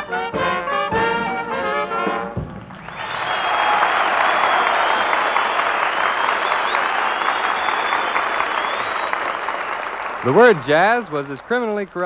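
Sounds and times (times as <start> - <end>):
audience applauding: 2.6 - 12.0.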